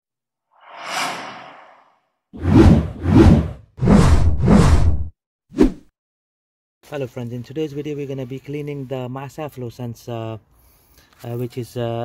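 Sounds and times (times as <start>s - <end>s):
whooshes with deep bass: 0.6s - 5.1s.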